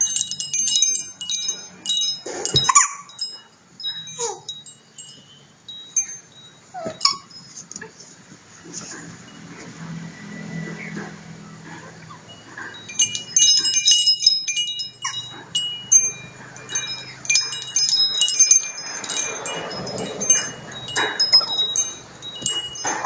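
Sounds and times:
small metal bells jingling: 0.0s - 23.0s.

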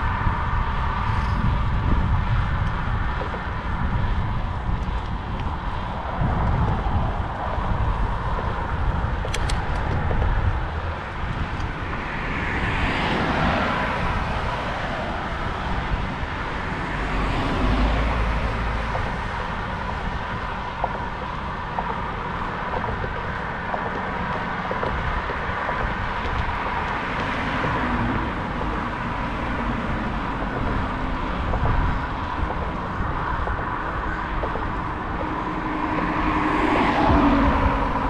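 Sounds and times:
passing vehicles road noise: 0.0s - 38.0s
wind rumbling on camera: 0.0s - 38.0s.

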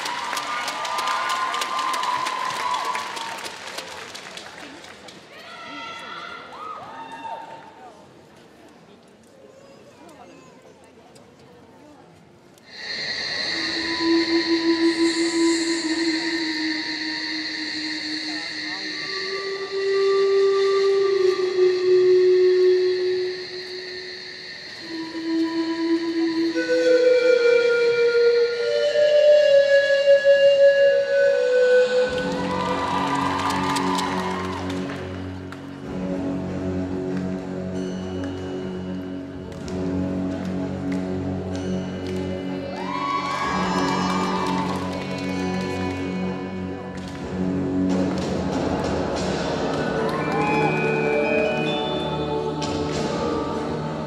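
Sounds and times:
slow melody of held notes: 12.7s - 32.7s.

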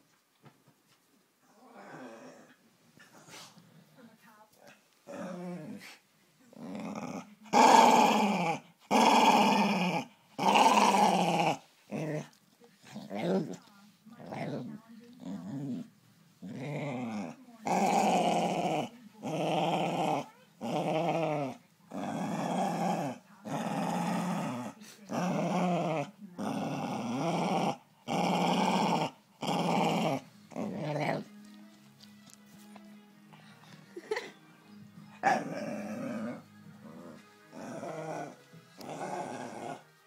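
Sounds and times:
dog growling: 1.4s - 4.0s, 5.0s - 31.4s, 35.1s - 39.9s.

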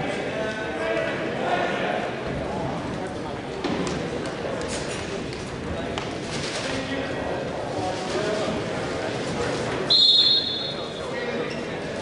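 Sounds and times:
indistinct chatter of people: 0.0s - 12.0s.

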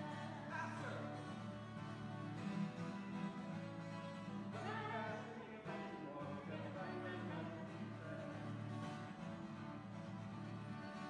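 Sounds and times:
person singing: 0.0s - 1.2s, 4.5s - 8.8s
acoustic guitar strumming: 0.0s - 11.0s.

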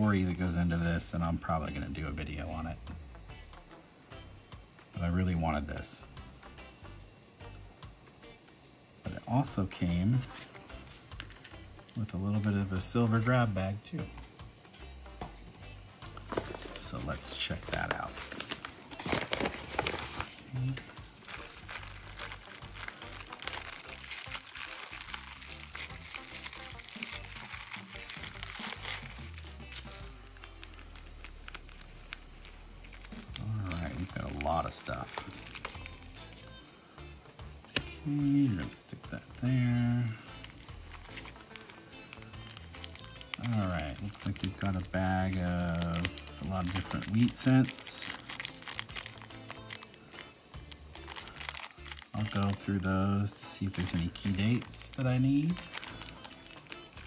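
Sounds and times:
background music: 0.0s - 57.0s
plastic bag crinkling: 16.1s - 36.6s, 40.2s - 50.3s, 51.0s - 57.0s.

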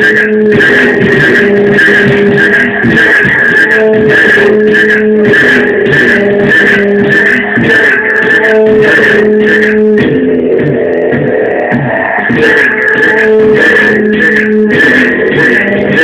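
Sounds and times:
electronic music with steady beat: 0.0s - 16.0s.

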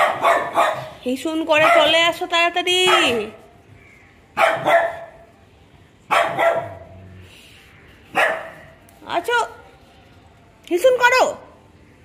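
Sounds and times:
small dog barking: 0.0s - 1.0s, 1.6s - 2.0s, 2.8s - 3.3s, 4.4s - 5.2s, 6.1s - 6.9s, 8.1s - 8.7s.

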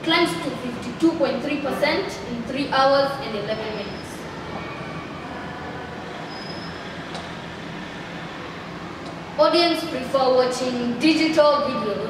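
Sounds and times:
continuous hum and hiss: 0.0s - 12.0s.

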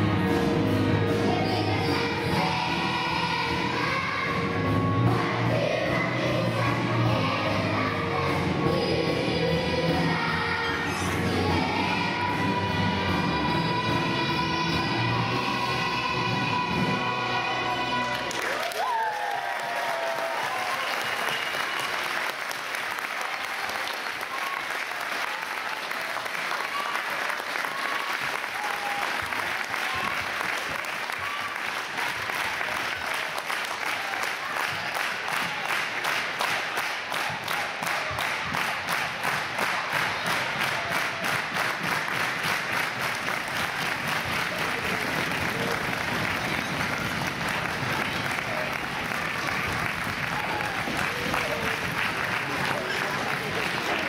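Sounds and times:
audience applauding: 18.0s - 54.0s
rhythmic clapping in unison: 18.0s - 54.0s.

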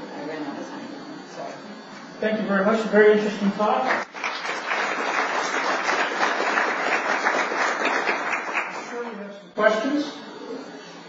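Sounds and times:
audience applauding: 3.9s - 8.9s.

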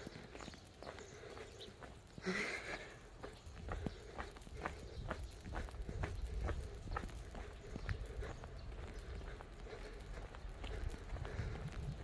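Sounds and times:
footsteps on paving: 0.0s - 12.0s
wind rumble: 3.1s - 12.0s.

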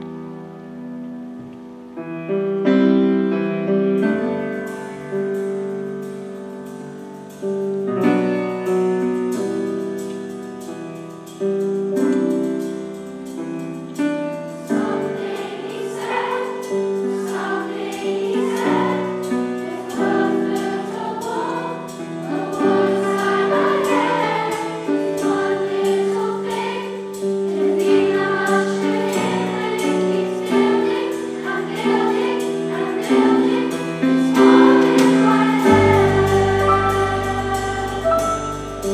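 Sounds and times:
piano and guitars: 0.0s - 38.9s
choir singing in parts: 14.6s - 38.9s.

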